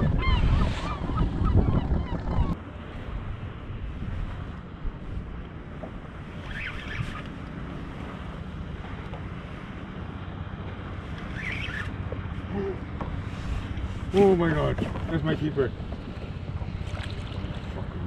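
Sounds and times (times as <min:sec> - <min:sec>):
water lapping against kayak: 0:00.0 - 0:18.0
wind buffeting microphone: 0:00.0 - 0:18.0.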